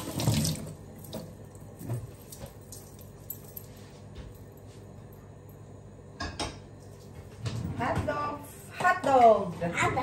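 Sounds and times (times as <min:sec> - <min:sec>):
tap running into sink: 0:00.0 - 0:01.3.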